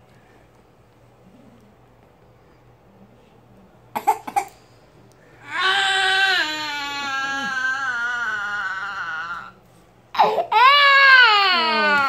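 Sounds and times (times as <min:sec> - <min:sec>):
baby crying: 0:05.4 - 0:09.6, 0:10.2 - 0:12.0.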